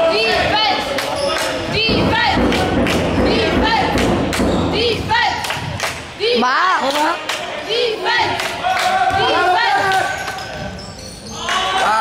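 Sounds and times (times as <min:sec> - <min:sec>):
irregular thuds: 0:01.8 - 0:05.8
sneakers squeaking on court: 0:10.1 - 0:11.4.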